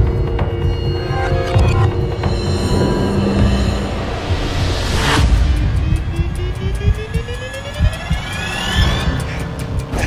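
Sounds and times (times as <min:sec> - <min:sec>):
deep pulsing rumble: 0:00.1 - 0:10.0
rising whine of tones: 0:00.3 - 0:09.2.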